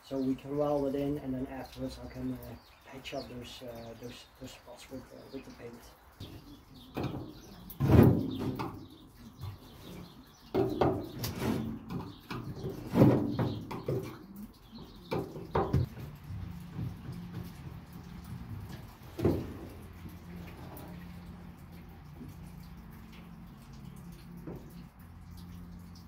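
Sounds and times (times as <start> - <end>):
irregular knocks and clunks: 6.2 - 25.9
low steady hum: 15.8 - 26.0.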